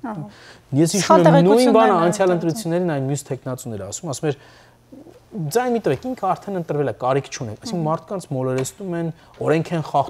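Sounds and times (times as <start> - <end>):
man speaking: 0.7 - 10.0.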